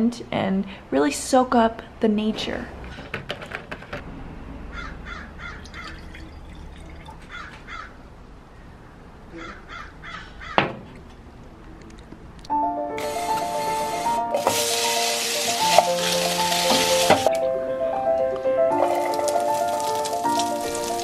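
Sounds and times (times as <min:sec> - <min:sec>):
crows cawing: 0:04.7 - 0:06.0, 0:07.3 - 0:08.0, 0:09.4 - 0:10.7
music: 0:12.5 - 0:21.0.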